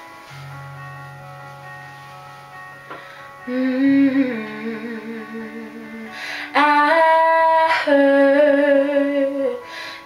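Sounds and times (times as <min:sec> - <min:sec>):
quiet instrumental backing music: 0:00.0 - 0:10.0.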